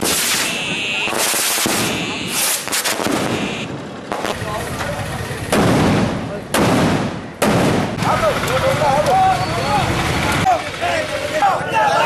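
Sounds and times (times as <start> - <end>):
firecrackers banging: 0.0 - 11.4.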